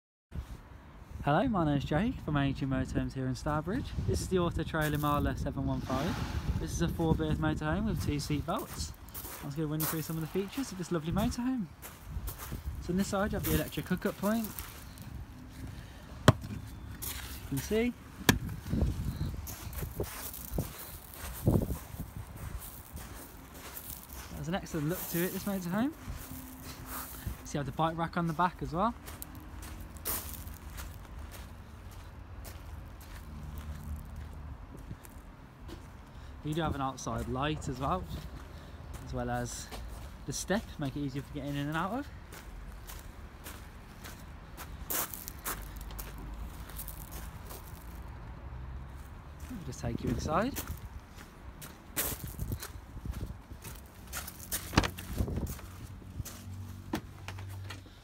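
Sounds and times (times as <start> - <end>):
footsteps on gravel: 4.8 - 48.2, 49.3 - 58.0.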